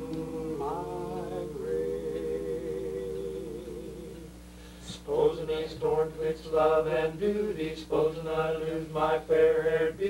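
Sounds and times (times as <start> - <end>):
male quartet singing a cappella: 0.0 - 10.0.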